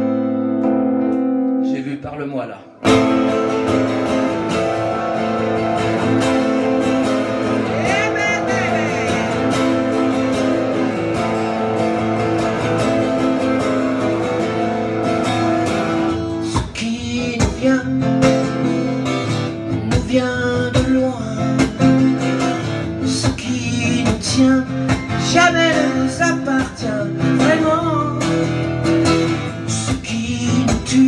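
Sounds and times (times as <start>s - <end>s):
acoustic guitar strumming: 0.0s - 1.7s, 2.7s - 31.0s.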